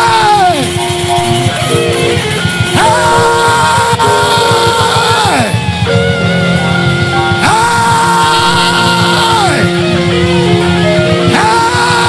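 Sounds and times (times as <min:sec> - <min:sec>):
live praise band music: 0:00.0 - 0:12.0.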